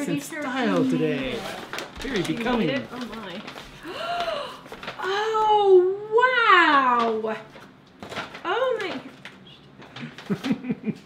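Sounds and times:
paper packaging rustling: 0:00.0 - 0:05.7, 0:06.6 - 0:10.9
woman gasping and murmuring: 0:03.8 - 0:04.7.

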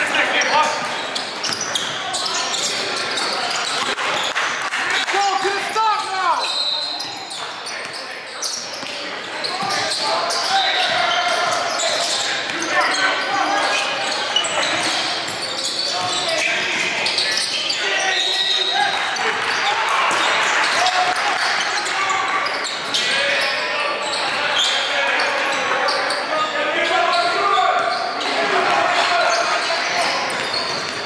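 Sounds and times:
players and spectators calling: 0:00.0 - 0:31.0.

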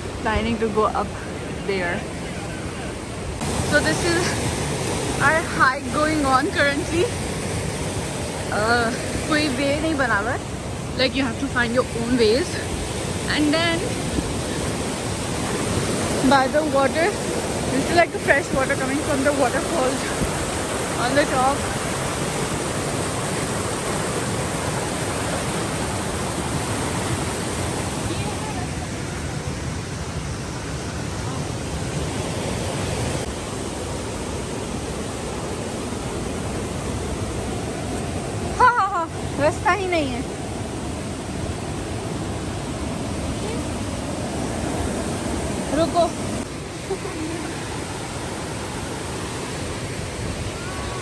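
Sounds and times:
stream running over rocks: 0:00.0 - 0:51.0.

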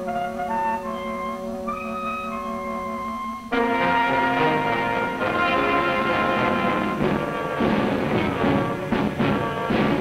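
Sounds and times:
orchestral film music: 0:00.0 - 0:10.0.

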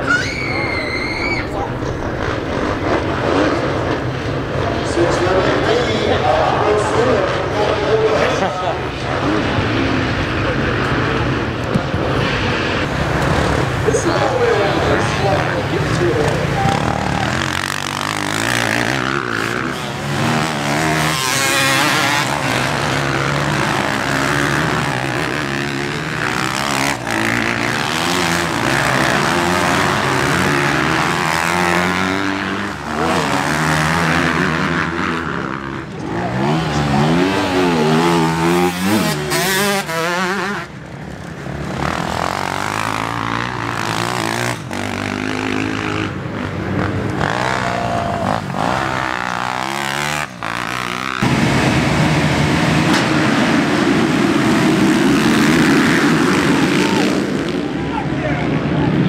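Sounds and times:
motocross bikes revving past: 0:00.0 - 0:59.0.

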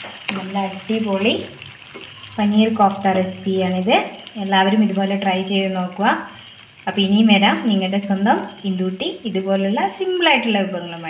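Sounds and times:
woman talking: 0:00.3 - 0:01.5, 0:02.4 - 0:06.2, 0:06.9 - 0:11.0.

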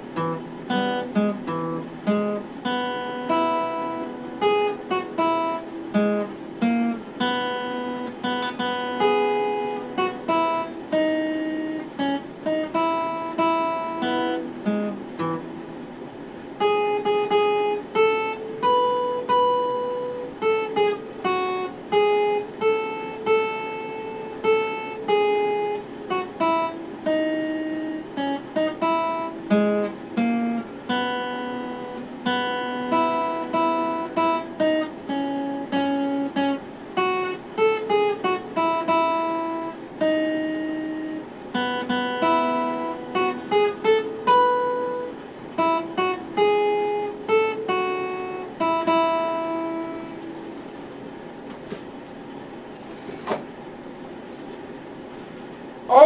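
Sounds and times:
acoustic guitar picked melody: 0:00.0 - 0:56.0.

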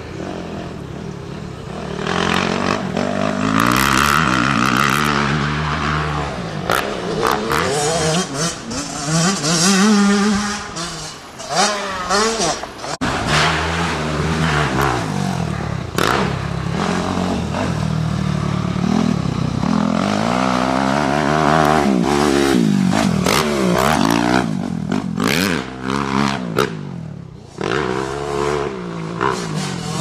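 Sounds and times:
motocross bike engine revving: 0:00.0 - 0:30.0.

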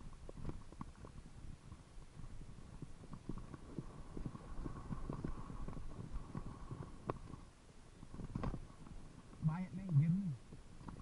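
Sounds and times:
bike rattling over bumps: 0:00.2 - 0:09.4.

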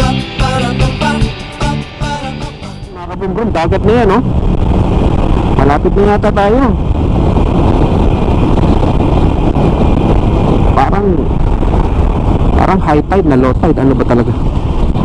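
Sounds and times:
wind and road noise: 0:00.0 - 0:15.0.

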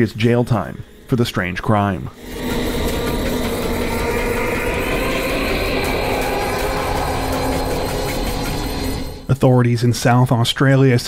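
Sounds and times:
droning background music: 0:02.2 - 0:09.3.

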